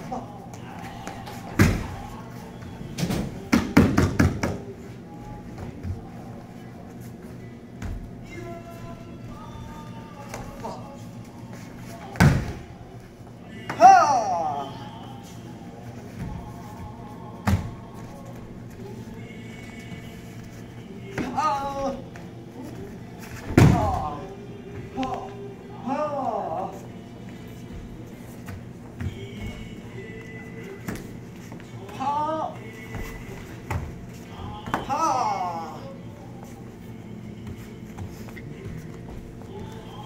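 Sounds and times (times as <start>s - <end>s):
thump on training mat: 12.2s - 12.6s
person yelling: 13.7s - 14.8s, 34.7s - 35.9s.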